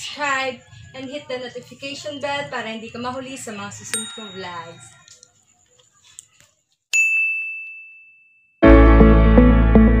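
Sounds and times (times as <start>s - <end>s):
high bell-like ding: 7.0s - 8.6s
loud music: 8.6s - 10.0s.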